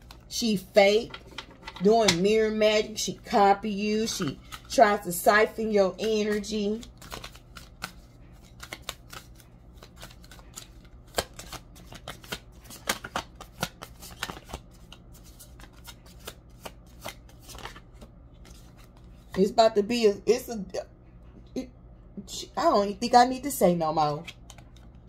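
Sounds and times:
cards being shuffled: 0:04.0 - 0:19.4, 0:24.2 - 0:25.0.

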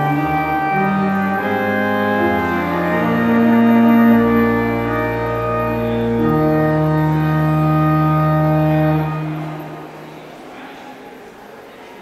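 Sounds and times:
organ sustained chord: 0:00.0 - 0:10.3.

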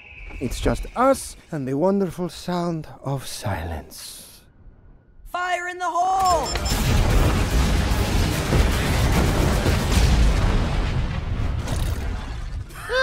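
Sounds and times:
rapid explosions rumbling: 0:06.6 - 0:12.8.

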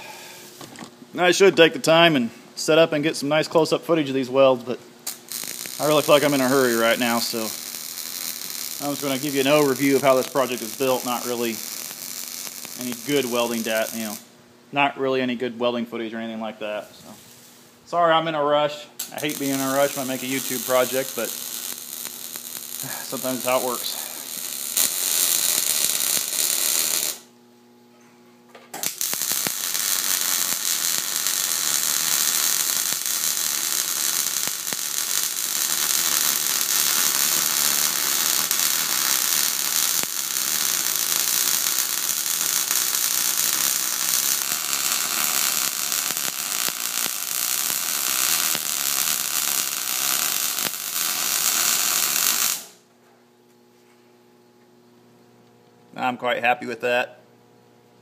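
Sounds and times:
welder arc crackling and buzzing: 0:00.0 - 0:27.8, 0:28.6 - 0:53.8.

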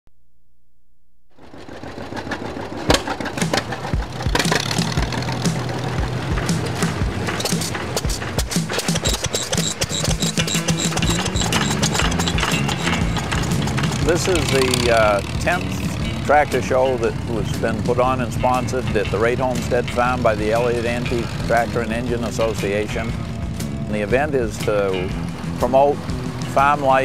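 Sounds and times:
stationary engine firing thumps: 0:02.3 - 0:16.3
music: 0:03.2 - 0:27.0.

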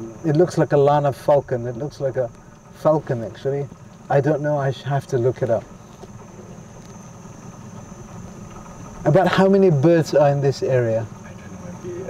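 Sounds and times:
boat engine idling: 0:00.0 - 0:12.0.

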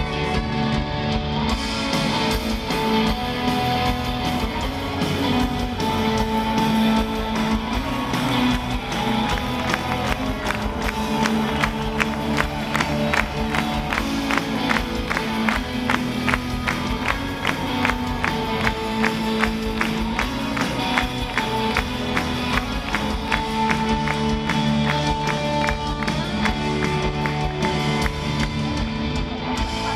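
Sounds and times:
electric guitars: 0:00.0 - 0:29.9
keyboards: 0:00.0 - 0:29.9
steady drum beat: 0:01.6 - 0:29.9.

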